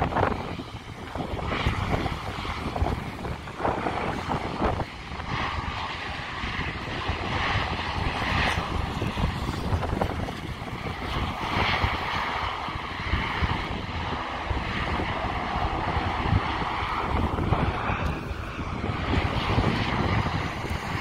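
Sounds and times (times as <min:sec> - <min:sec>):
turboprop engines running: 0:00.0 - 0:21.0.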